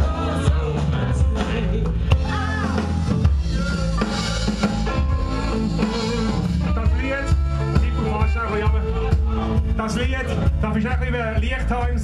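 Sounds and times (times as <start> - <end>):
bass: 0.0 - 12.0
drum kit: 0.0 - 12.0.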